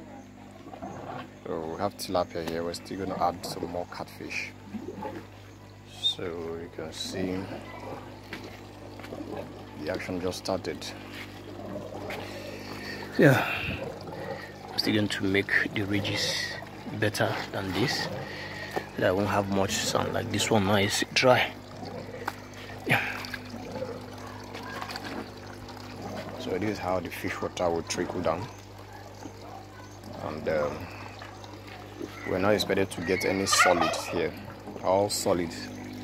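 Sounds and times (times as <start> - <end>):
steady low hum: 0.0 - 36.0
water trickling through gravel: 0.5 - 36.0.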